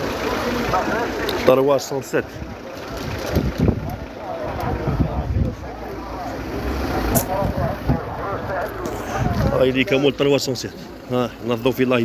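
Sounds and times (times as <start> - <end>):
low steady rumble: 0.0 - 12.0
people talking: 0.0 - 12.0.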